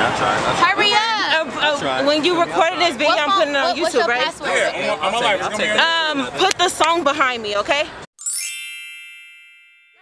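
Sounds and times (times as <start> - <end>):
bright chime: 8.2 - 10.0.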